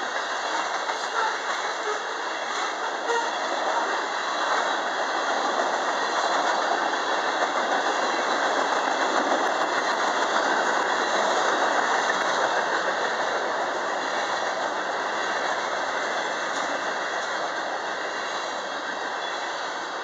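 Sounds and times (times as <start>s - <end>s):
freight train wheels rumbling on rails: 0.0s - 20.0s.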